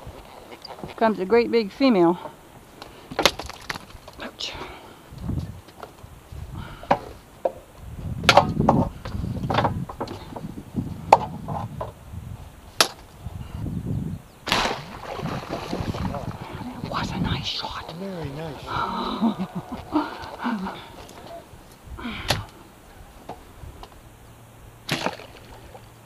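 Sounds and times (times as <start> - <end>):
low thuds: 14.4 - 22.6.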